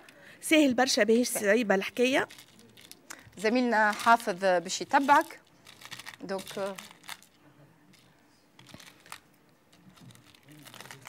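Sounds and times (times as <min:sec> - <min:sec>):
plastic bags crinkling: 0:01.9 - 0:07.4, 0:08.0 - 0:11.0.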